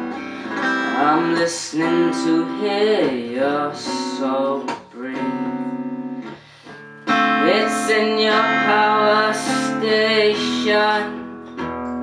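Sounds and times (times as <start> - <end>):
young man singing: 0.0 - 11.7
guitar playing: 0.0 - 12.0.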